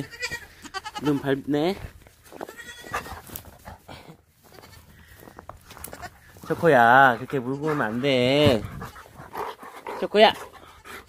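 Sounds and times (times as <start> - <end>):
goat kid bleating: 0.0 - 1.5, 2.3 - 3.2, 4.4 - 5.0, 5.7 - 9.2
footsteps crunching in snow: 0.4 - 9.3.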